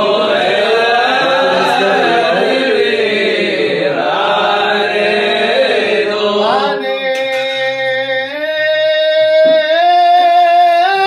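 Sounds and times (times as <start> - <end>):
men chanting a prayer: 0.0 - 11.0.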